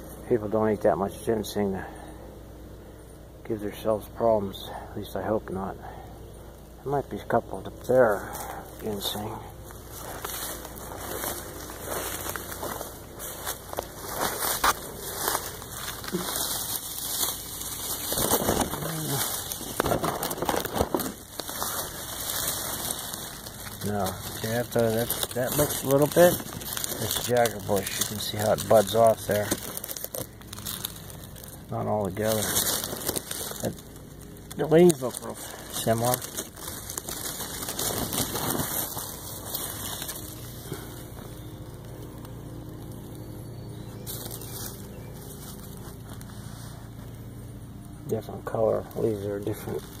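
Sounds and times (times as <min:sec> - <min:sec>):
faint low hum: 0:00.0 - 0:50.0
dry leaves rustling and crackling: 0:06.4 - 0:50.0.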